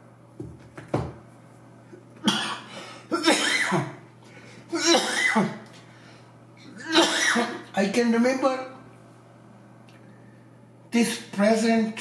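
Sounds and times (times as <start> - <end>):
man coughing: 2.2 - 4.0, 4.7 - 5.6, 6.6 - 7.7.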